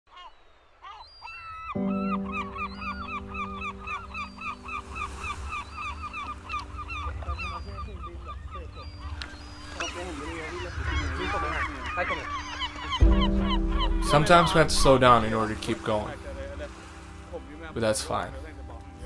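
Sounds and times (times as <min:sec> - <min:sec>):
geese honking: 0:00.9 - 0:16.9
low held music chord: 0:01.8 - 0:07.7, 0:12.9 - 0:19.0.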